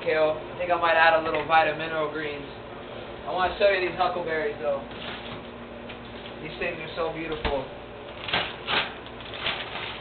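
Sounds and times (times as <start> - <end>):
plastic bag crinkling and rustling: 4.9 - 5.5, 8.1 - 10.0.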